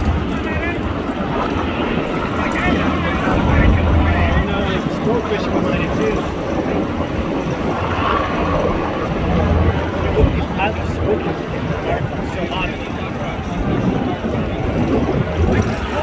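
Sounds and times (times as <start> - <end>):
boat engines running: 0.0 - 16.0
wind rumble on microphone: 0.0 - 16.0.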